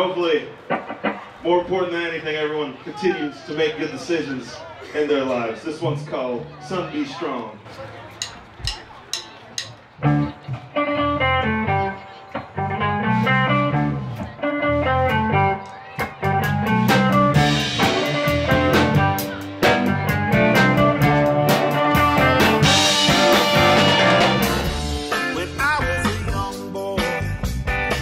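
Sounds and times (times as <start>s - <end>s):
band playing electric guitar: 0.0s - 1.5s, 8.6s - 28.0s
drum kit: 8.2s - 11.8s, 12.4s - 28.0s
bass guitar: 9.6s - 28.0s.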